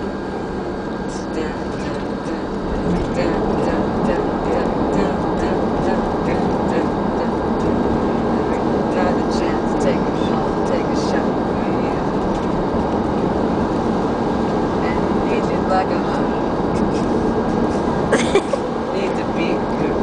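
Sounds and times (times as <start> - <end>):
voices: 0.0 - 12.3, 14.7 - 20.0
bus rumbling: 0.0 - 20.0.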